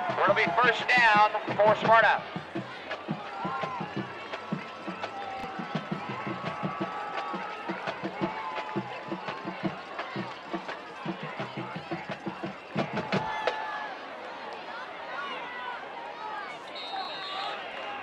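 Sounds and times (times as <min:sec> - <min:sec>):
band drumbeats: 0:00.0 - 0:13.6
stadium crowd noise: 0:00.0 - 0:18.0.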